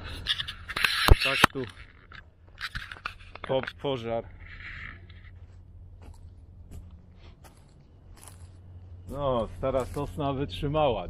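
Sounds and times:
footsteps on dry sandy ground: 4.2 - 10.6.

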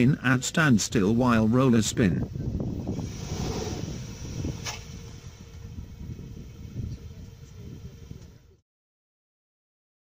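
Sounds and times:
car engine and tyres rumbling: 0.0 - 8.6.

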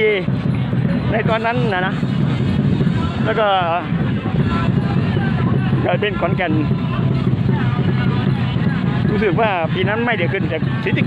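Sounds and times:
low rumbling noise: 0.0 - 11.0
man speaking: 5.8 - 6.7, 9.1 - 11.0.

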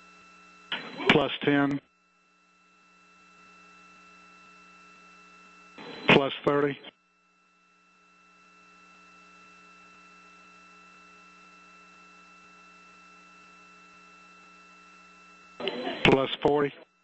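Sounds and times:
electrical hum and hiss: 0.1 - 16.8.

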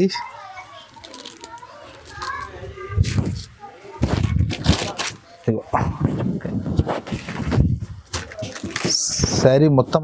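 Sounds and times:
faint background voices: 0.0 - 10.0
fabric rustling: 1.0 - 9.5.

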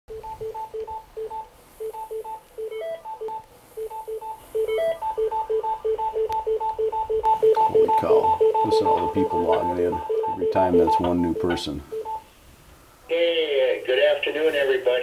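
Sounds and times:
two-pitch electronic beeps: 0.1 - 12.2.

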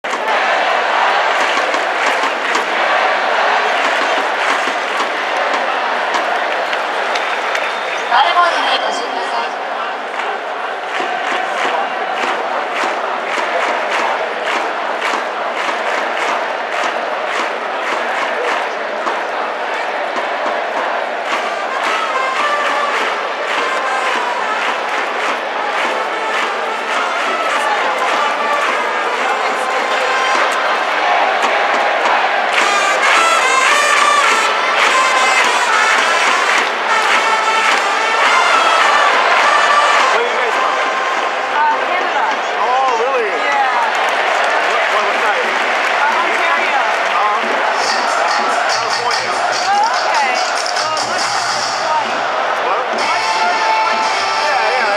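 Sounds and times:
crowd chanting in unison: 0.0 - 54.9
trumpets playing melody: 20.9 - 24.9, 32.5 - 41.2, 47.7 - 54.9
steady beat: 46.5 - 54.9.

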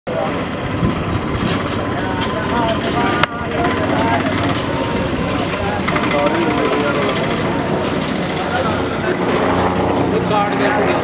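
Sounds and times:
many people talking: 0.1 - 11.0
vehicle engine running: 0.1 - 11.0.

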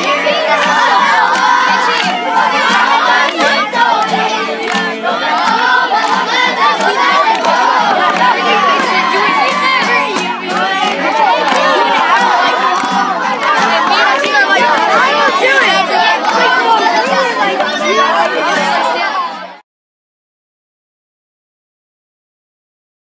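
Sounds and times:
children shouting together: 0.0 - 19.6
strummed acoustic guitar: 0.0 - 19.6.

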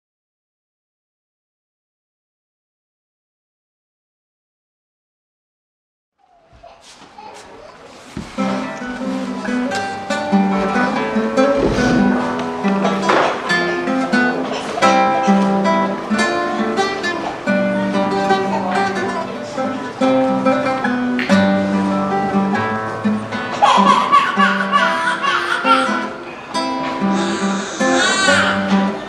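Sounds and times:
fingerpicked classical guitar: 7.7 - 29.0.

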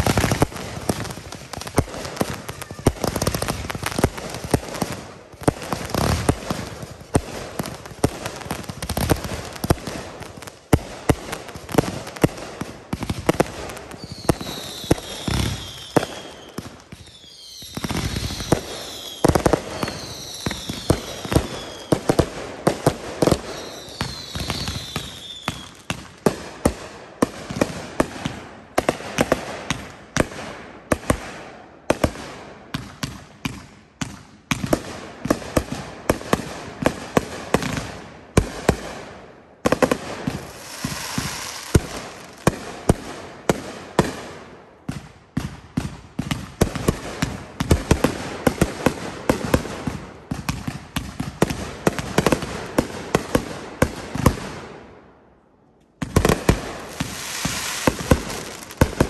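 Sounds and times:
fireworks firing in a barrage: 0.0 - 55.1, 56.0 - 59.0.

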